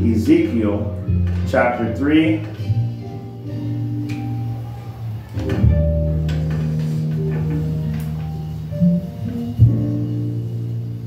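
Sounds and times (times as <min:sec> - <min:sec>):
guitar background music: 0:00.0 - 0:11.0
low bass line: 0:00.0 - 0:11.0.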